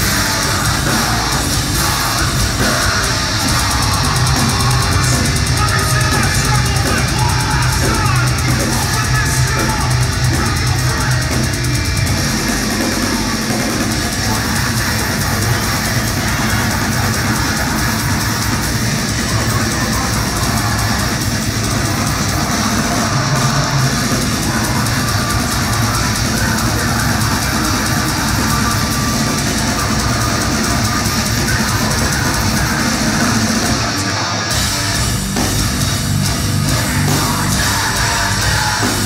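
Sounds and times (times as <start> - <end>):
live heavy metal band: 0.0 - 39.0.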